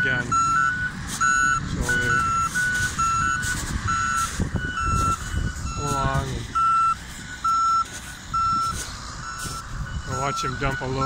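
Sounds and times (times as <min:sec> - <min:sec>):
backup alarm beeps: 0:00.0 - 0:11.0
engines running low: 0:00.0 - 0:11.0.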